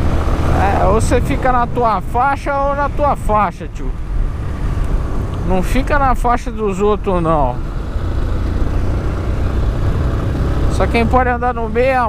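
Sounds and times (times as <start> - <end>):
motorcycle engine drone: 0.0 - 12.0.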